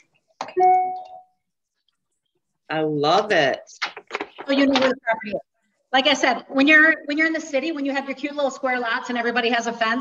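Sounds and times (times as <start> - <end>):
chime ding: 0.5 - 1.3.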